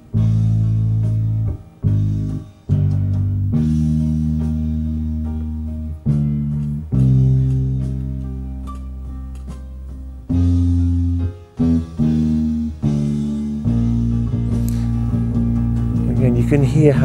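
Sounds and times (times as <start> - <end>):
bass guitar long held notes: 0.0 - 17.0.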